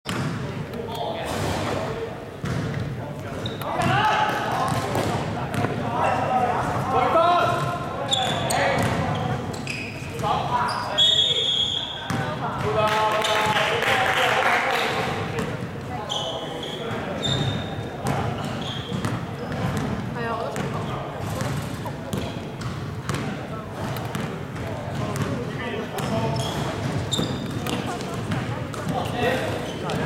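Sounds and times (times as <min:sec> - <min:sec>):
shoe squeaks on court: 0:03.4 - 0:03.8, 0:08.0 - 0:12.2, 0:16.0 - 0:19.2, 0:26.0 - 0:28.0.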